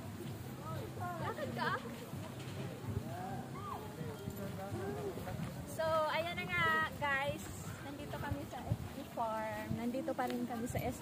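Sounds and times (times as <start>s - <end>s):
people talking faintly: 0.0s - 11.0s.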